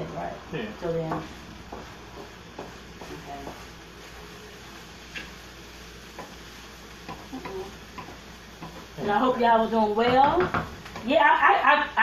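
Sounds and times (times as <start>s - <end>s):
faint steady hiss: 0.0s - 12.0s
utensil stirring vegetables in skillet: 0.0s - 12.0s
utensil clicking against pan: 7.0s - 8.9s.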